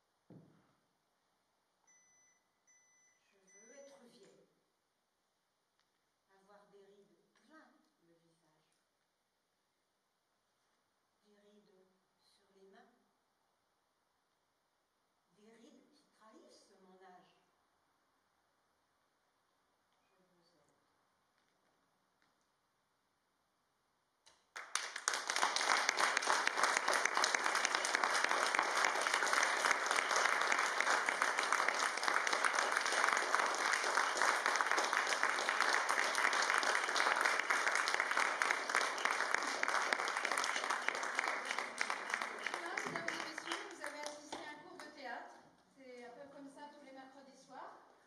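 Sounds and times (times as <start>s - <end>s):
audience applause: 24.6s - 44.2s.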